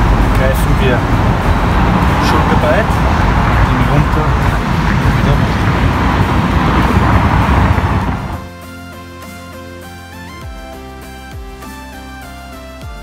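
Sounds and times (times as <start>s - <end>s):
outdoor rushing noise with rumble: 0.0s - 8.5s
background music with held notes: 8.4s - 13.0s.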